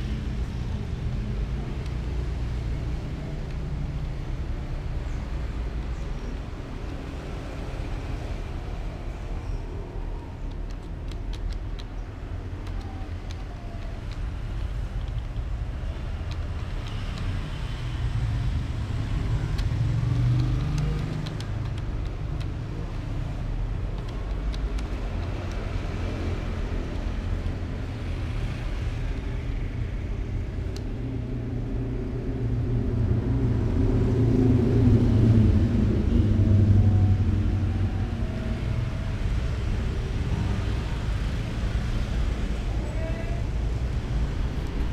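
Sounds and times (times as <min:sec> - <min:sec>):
low rumble of road traffic: 0:00.0 - 0:44.9
typing on computer keyboard: 0:10.2 - 0:17.6, 0:19.3 - 0:23.1, 0:23.8 - 0:26.3.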